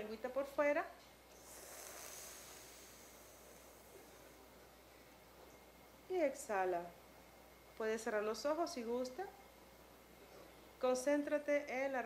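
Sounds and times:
faint hissing breath inhaled: 1.3 - 5.0.

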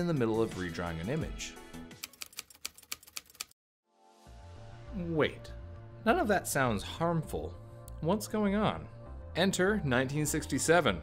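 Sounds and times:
typewriter keys striking: 2.0 - 3.5.

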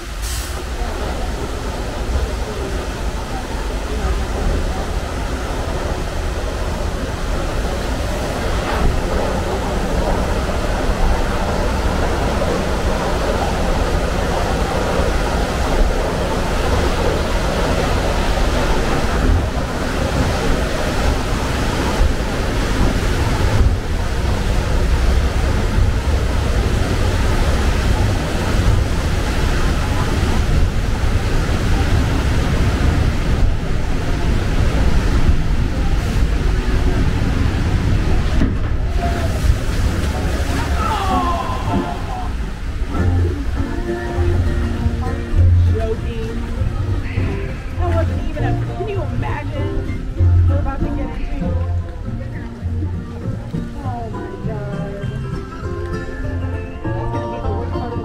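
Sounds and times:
conveyor mechanical rumble: 0.0 - 58.0
water rushing down flume: 0.0 - 58.0.

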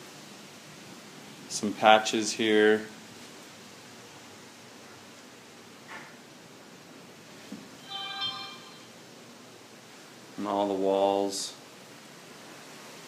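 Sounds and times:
faint room hiss: 0.0 - 13.0
brief chord tone: 7.8 - 9.0.

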